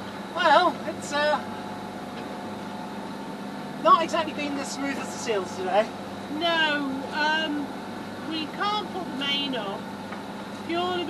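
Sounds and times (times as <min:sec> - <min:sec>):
diesel engine droning: 0:00.0 - 0:11.0
woman speaking: 0:00.4 - 0:01.5, 0:03.8 - 0:09.8, 0:10.7 - 0:11.0.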